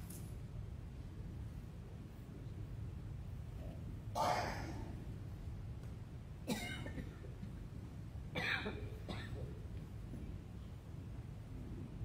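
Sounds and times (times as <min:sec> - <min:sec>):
person coughing: 0:06.5 - 0:07.3, 0:08.4 - 0:09.5.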